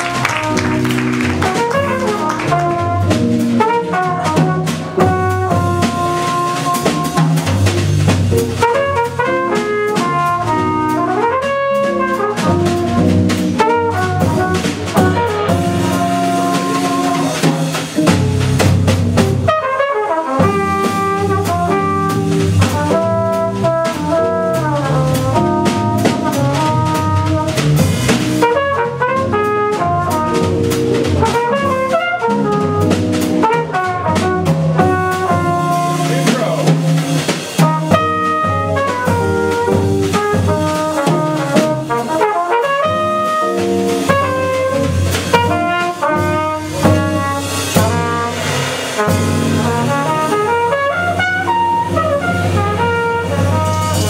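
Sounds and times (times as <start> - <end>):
trumpet playing: 0.0 - 7.8, 8.4 - 18.2, 19.2 - 54.0
double bass: 0.0 - 54.0
drum kit: 0.0 - 54.0.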